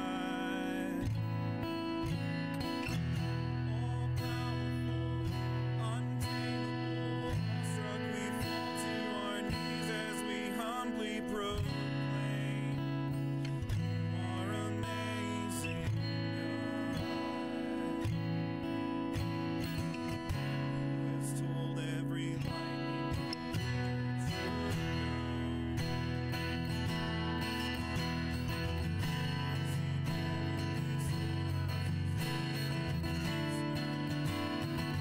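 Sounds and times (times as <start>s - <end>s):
man singing worship song: 0.0s - 1.2s, 3.5s - 18.0s, 21.1s - 22.7s
acoustic guitar strumming chords: 0.0s - 35.0s.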